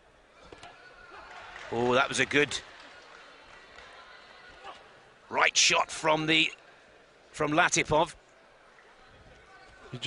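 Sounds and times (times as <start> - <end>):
boxing hall background noise: 0.0 - 10.0.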